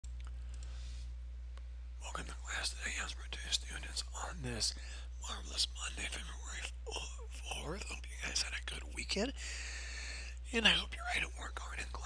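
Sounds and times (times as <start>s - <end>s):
computer mouse clicks: 0.0s - 0.8s
low electrical hum: 0.0s - 12.0s
man speaking: 2.0s - 9.6s, 10.4s - 12.0s.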